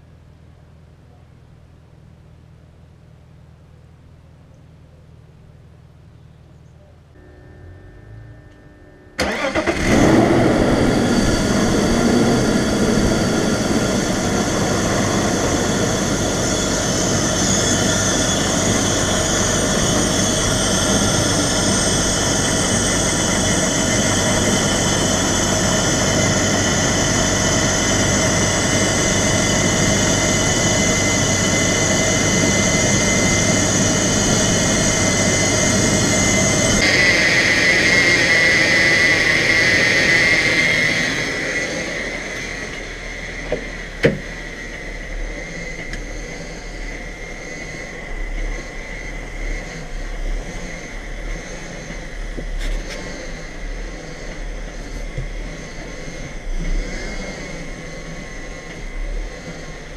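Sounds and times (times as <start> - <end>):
car engine starting and idling: 5.3 - 59.9
high-pitched whine: 7.1 - 59.9.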